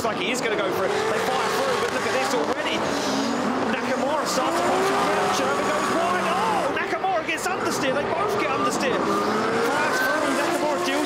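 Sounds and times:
car engines revving high: 0.0s - 11.0s.

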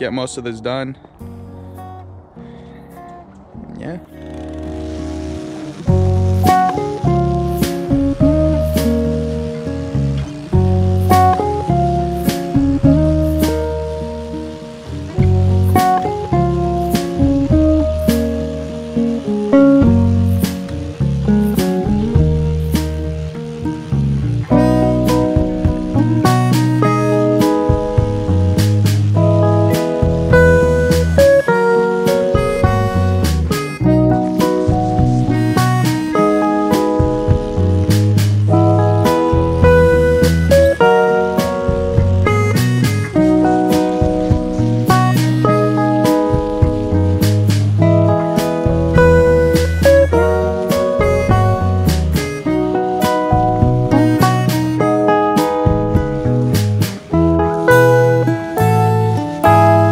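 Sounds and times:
low bass line: 0.0s - 59.9s
plucked melody: 0.0s - 59.9s.

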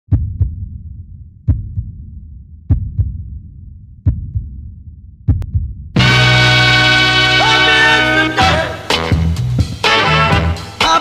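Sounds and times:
heartbeat thumps: 0.1s - 6.1s.

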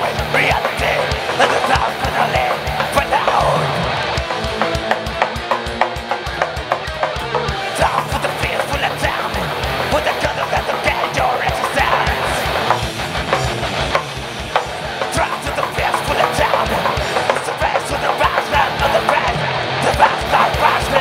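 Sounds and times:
heavy metal band playing: 0.0s - 21.0s
rapid kick drum strokes: 0.0s - 21.0s.

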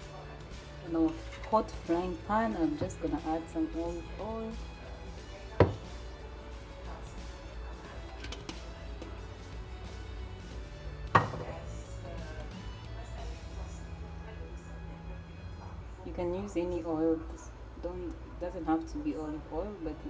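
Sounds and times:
faint background music: 0.0s - 20.0s.

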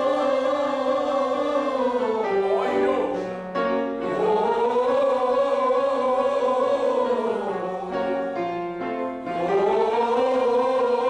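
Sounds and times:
group singing held notes: 0.0s - 11.0s.

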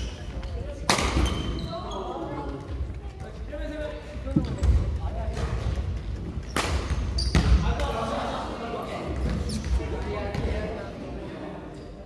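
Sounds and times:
shoe squeaks: 0.0s - 0.4s, 1.2s - 2.4s, 6.4s - 7.5s, 9.4s - 9.8s
racket hitting shuttlecock: 0.8s - 1.4s, 6.4s - 7.5s.

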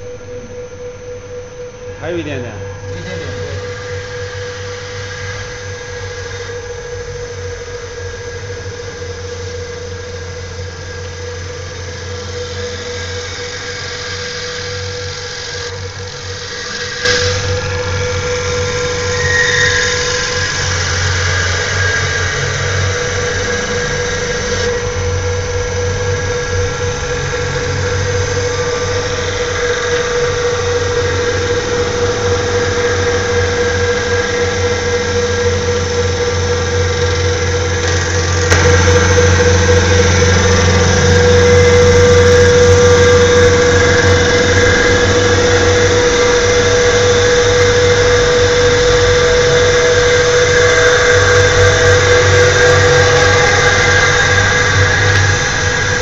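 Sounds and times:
wood lathe whine and motor hum: 0.0s - 56.0s.

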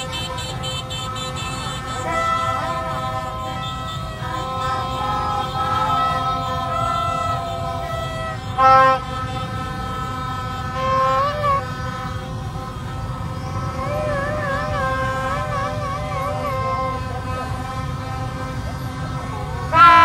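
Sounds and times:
low rumble of crowd: 0.0s - 20.0s
plastic trumpets blowing: 0.0s - 20.0s
traffic rumble: 0.0s - 20.0s
warbling horn call: 0.0s - 20.0s.

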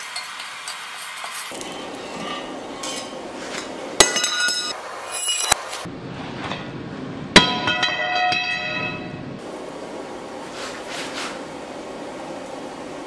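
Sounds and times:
steel striking steel ringing: 1.5s - 5.6s, 7.4s - 9.2s.

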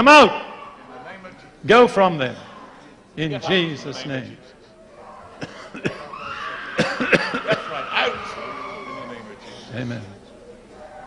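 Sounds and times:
people coughing: 5.3s - 8.2s.

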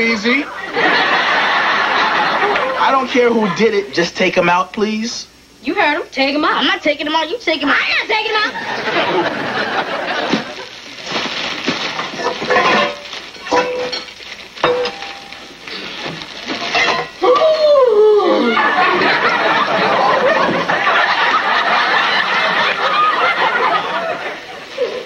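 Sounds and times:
studio audience laughing: 0.5s - 3.7s, 8.5s - 10.7s, 18.4s - 25.0s
metal pots and pans clinking: 12.0s - 15.4s, 16.6s - 17.2s
voice crying out: 17.2s - 18.8s.

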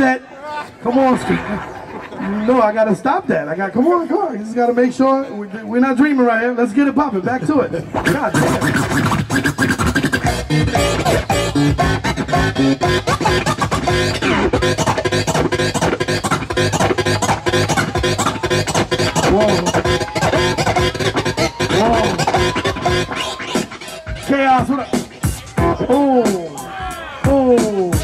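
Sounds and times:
vinyl record scratching: 7.6s - 28.0s
hip hop beat through speakers: 7.8s - 28.0s.

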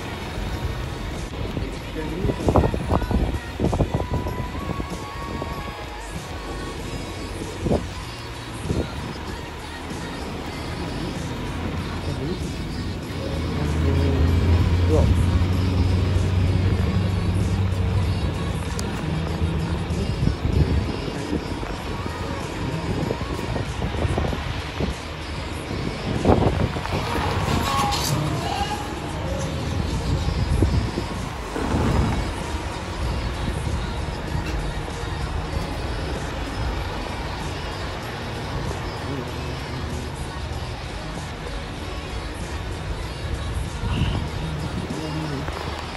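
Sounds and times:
music playing: 0.0s - 45.9s
diesel bus engine driving past: 9.4s - 23.4s, 26.6s - 45.9s.

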